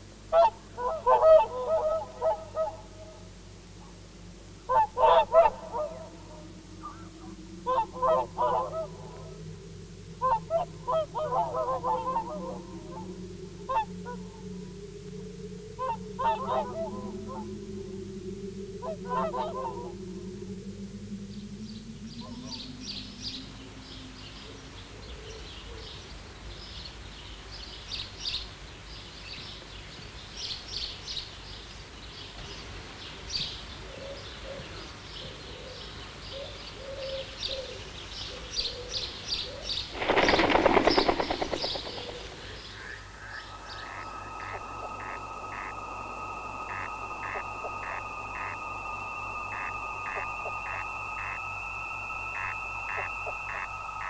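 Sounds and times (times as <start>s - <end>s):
wavering gliding low tones: 0.7s - 25.6s, 40.1s - 54.0s
high twittering chirps: 39.8s - 54.0s
electronic honking calls: 43.6s - 54.0s.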